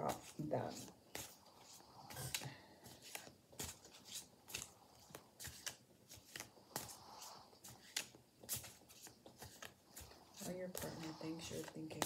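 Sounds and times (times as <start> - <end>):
cards being shuffled: 0.1 - 12.0.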